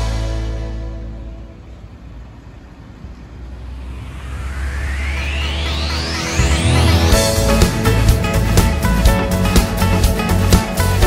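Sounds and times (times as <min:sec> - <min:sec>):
car engine running: 0:01.6 - 0:11.0.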